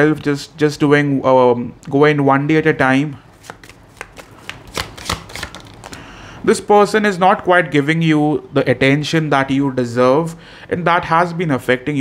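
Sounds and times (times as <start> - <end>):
cards being shuffled: 3.4 - 6.0.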